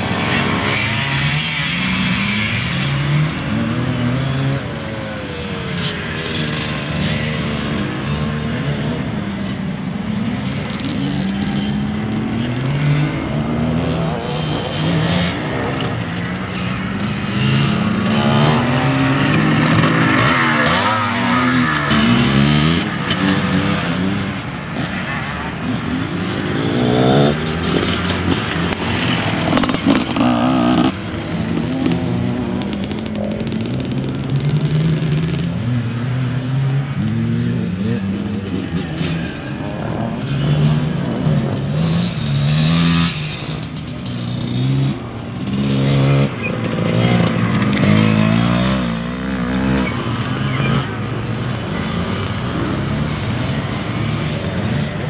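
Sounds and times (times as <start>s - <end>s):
motorcycle engines revving: 0.0s - 55.0s.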